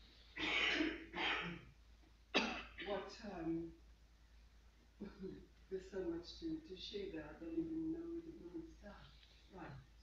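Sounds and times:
person clearing throat: 0:00.4 - 0:01.7, 0:02.4 - 0:03.0.

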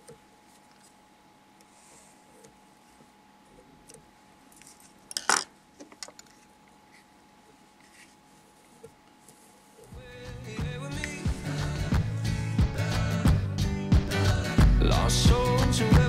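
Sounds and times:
faint steady hum: 0:00.0 - 0:16.0.

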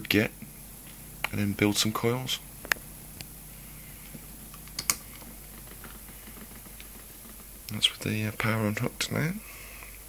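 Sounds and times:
light clicks of power leads: 0:00.0 - 0:03.4, 0:04.0 - 0:10.0
faint steady hum: 0:00.0 - 0:10.0.

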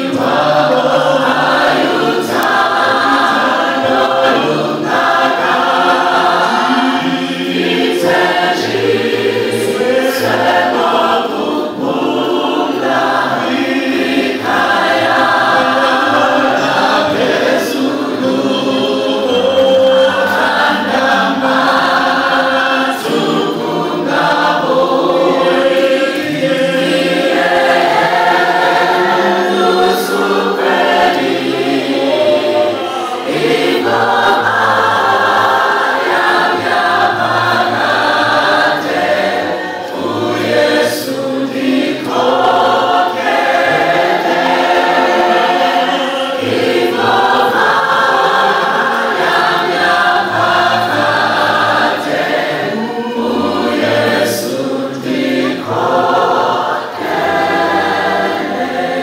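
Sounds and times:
many voices singing a hymn: 0:00.0 - 0:59.0.

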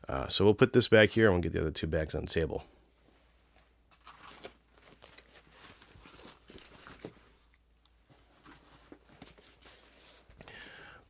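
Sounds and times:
fabric pouches rustling: 0:03.2 - 0:10.6.

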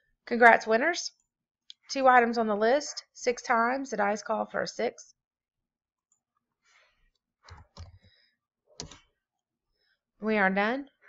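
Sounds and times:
keyboard keys clicking: 0:07.5 - 0:08.0.

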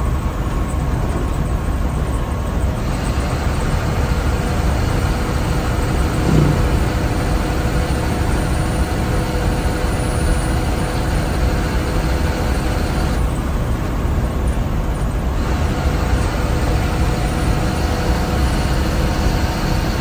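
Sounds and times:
bus engine drone: 0:00.0 - 0:20.0
faint steady whines: 0:00.0 - 0:20.0
road rumble: 0:00.0 - 0:20.0
short low sound: 0:06.0 - 0:07.3.

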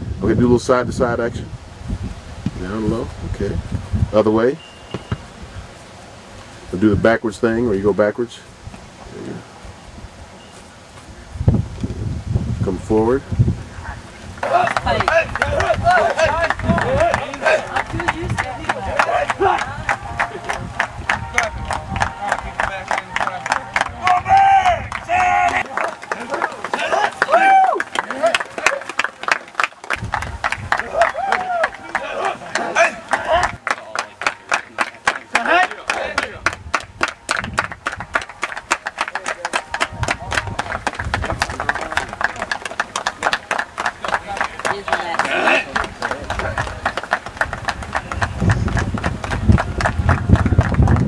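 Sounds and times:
players shouting: 0:14.4 - 0:29.3, 0:30.7 - 0:36.5, 0:43.9 - 0:47.0
rapid sharp claps: 0:14.4 - 0:51.0.

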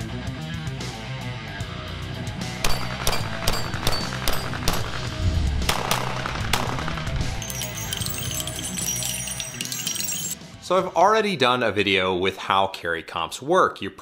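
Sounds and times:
heavy electric guitar music: 0:00.0 - 0:07.5
handgun shots: 0:02.6 - 0:05.1, 0:05.7 - 0:07.1.

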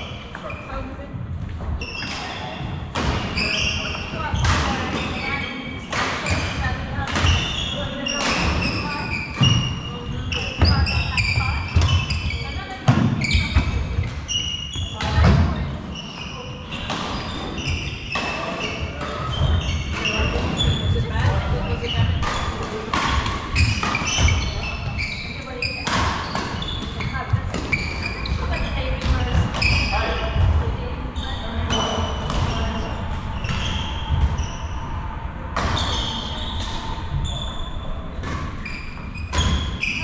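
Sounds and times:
shoes squeaking on wooden floor: 0:01.6 - 0:05.6, 0:06.2 - 0:22.6, 0:23.6 - 0:30.1.

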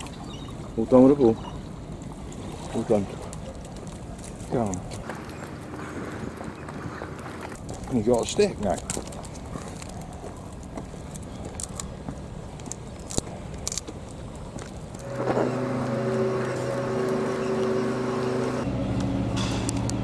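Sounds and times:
faint outdoor background noise: 0:00.0 - 0:20.0
motor humming: 0:14.9 - 0:20.0.

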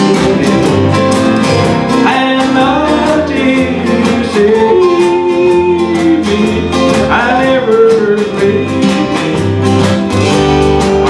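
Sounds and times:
man singing: 0:00.0 - 0:11.0
steady drum beat: 0:00.0 - 0:11.0
strummed acoustic guitar: 0:00.0 - 0:11.0.

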